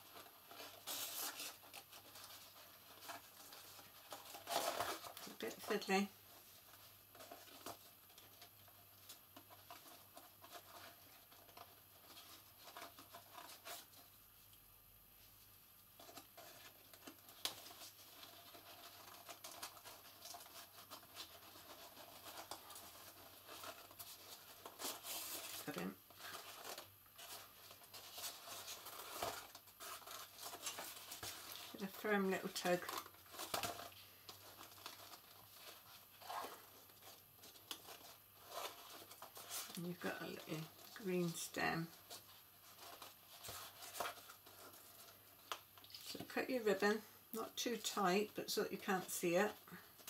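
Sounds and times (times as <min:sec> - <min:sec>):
card and ribbon rustling: 0:00.0 - 0:14.6, 0:15.2 - 0:50.0.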